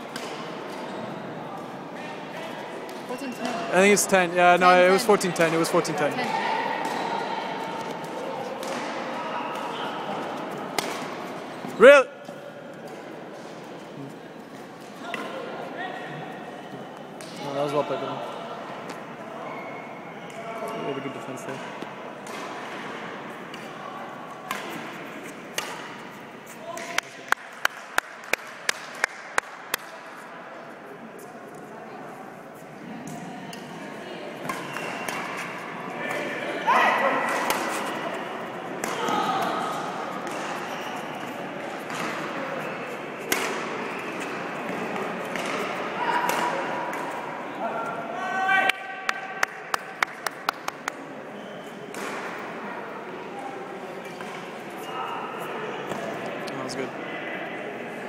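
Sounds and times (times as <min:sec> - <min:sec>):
racket hitting shuttlecock: 0:06.2 - 0:07.2, 0:07.8 - 0:09.8, 0:10.7 - 0:11.2, 0:24.4 - 0:30.0, 0:37.2 - 0:38.0, 0:38.7 - 0:40.6, 0:43.3 - 0:47.2, 0:51.9 - 0:52.4.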